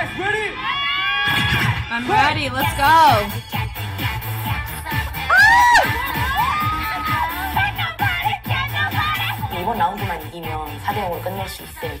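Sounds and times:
dance music with bass beat: 1.4 - 12.0
crowd cheering: 5.0 - 7.8
loud yells: 5.3 - 7.6.

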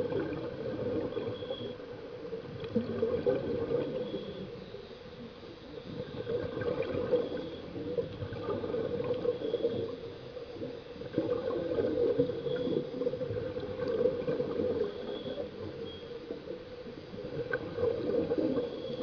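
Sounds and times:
muffled water bubbling: 0.0 - 19.0.

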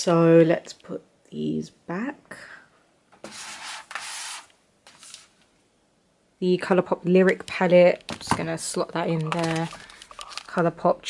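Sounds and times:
palettes scraping together: 3.2 - 5.4, 9.1 - 10.6.

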